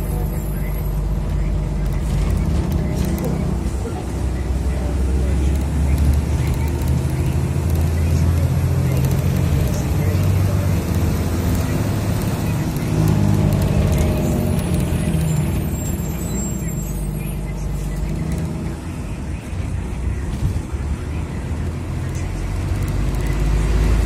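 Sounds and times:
vehicle engine and road rumble: 0.0s - 24.0s.

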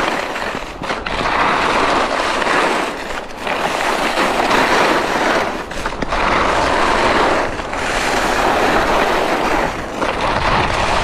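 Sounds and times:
skis scraping on snow: 0.0s - 11.0s.

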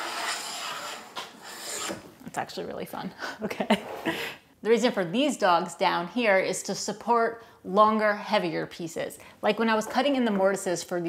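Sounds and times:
hand plane shaving wood: 0.0s - 2.0s.

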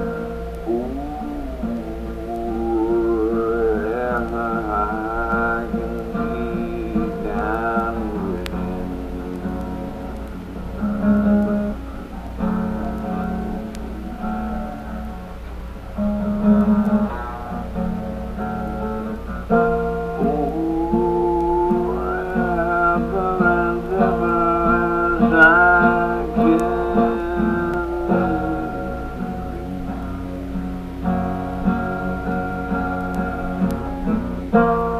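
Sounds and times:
guitar picking: 0.0s - 34.9s
steady low hum: 0.0s - 34.9s
man singing: 0.7s - 10.3s, 20.2s - 30.0s.

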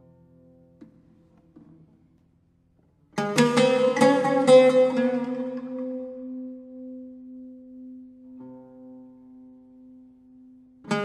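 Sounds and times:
plucked string instrument strumming: 3.2s - 9.0s.

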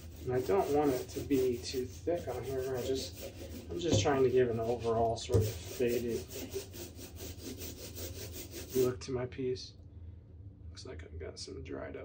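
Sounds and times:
rubber roller rubbing on paint: 0.0s - 9.0s.

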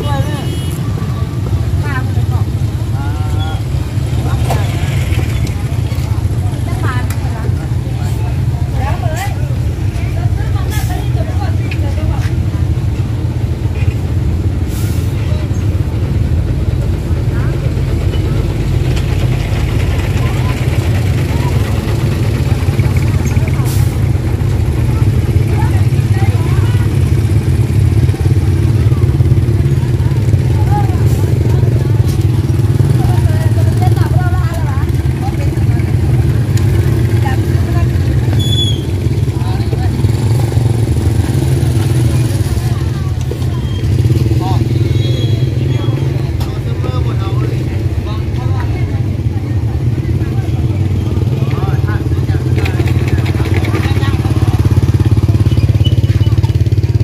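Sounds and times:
distant voices chattering: 0.0s - 57.0s
motorcycle engine rumbling: 0.0s - 57.0s.

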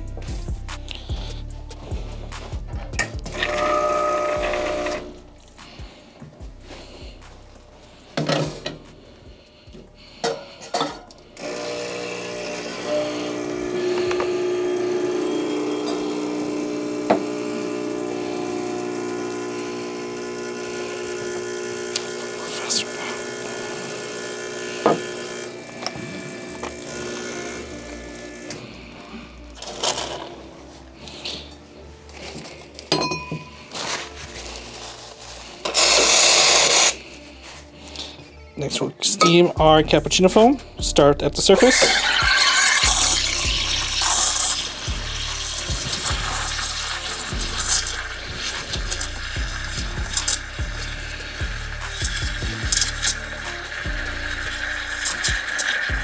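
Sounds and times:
espresso machine pump humming: 3.3s - 5.2s, 11.4s - 28.7s, 35.6s - 37.0s, 41.7s - 56.0s
knocks and clinks: 32.9s - 33.6s
steam wand hissing: 35.6s - 37.0s, 41.6s - 56.0s.

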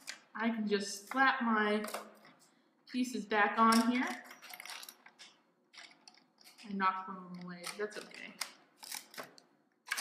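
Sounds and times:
plastic bricks clicking: 3.7s - 6.7s, 7.3s - 10.0s.

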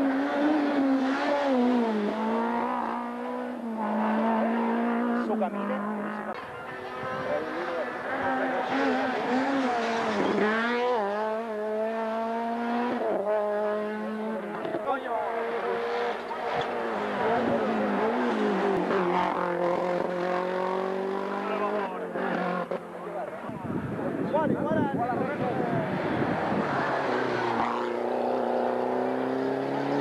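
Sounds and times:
rally car engine revving: 0.0s - 24.4s, 25.2s - 30.0s.

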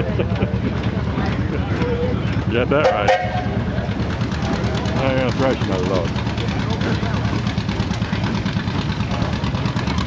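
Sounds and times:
steam engine running: 0.0s - 10.0s.

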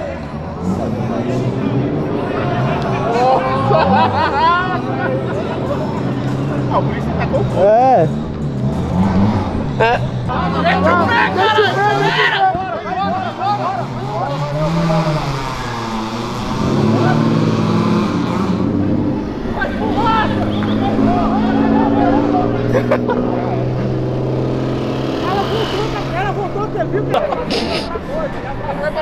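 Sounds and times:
people talking: 0.0s - 8.2s, 9.8s - 15.8s, 16.6s - 17.4s, 19.1s - 24.1s, 24.9s - 29.0s
car engine revving: 0.0s - 29.0s.

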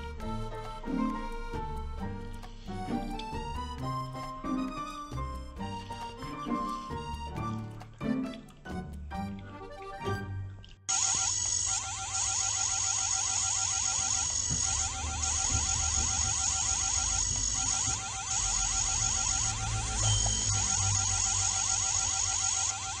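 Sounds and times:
high electronic whine: 10.9s - 23.0s.

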